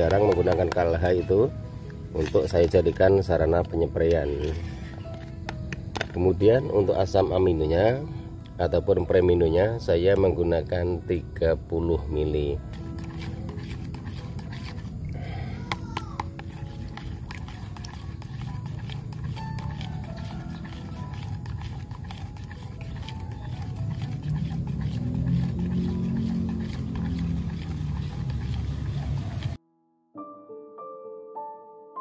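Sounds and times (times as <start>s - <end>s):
liquid being stirred: 0.0s - 7.2s, 11.8s - 29.6s.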